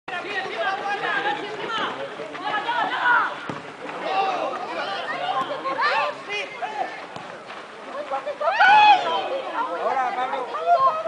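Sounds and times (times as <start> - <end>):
voices talking and calling out: 0.1 - 11.0.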